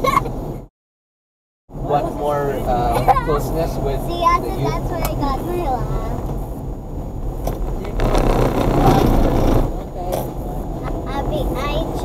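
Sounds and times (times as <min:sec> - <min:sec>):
road noise: 0:00.0 - 0:00.7, 0:01.7 - 0:12.0.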